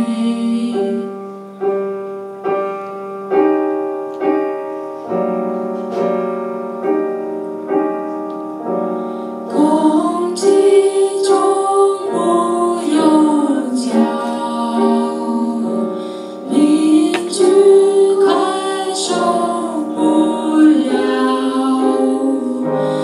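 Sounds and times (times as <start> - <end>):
woman singing: 0.0 - 1.2, 9.5 - 23.0
piano playing chords: 0.0 - 23.0.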